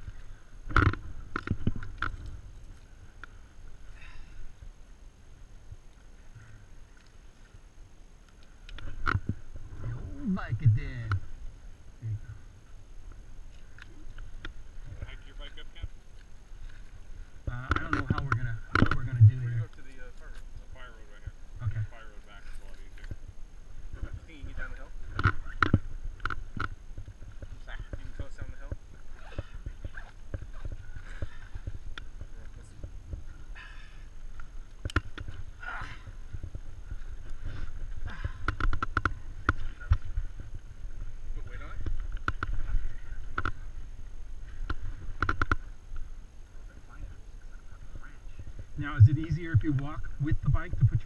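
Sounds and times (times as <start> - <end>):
wind rumble on microphone: 8.6 - 51.0.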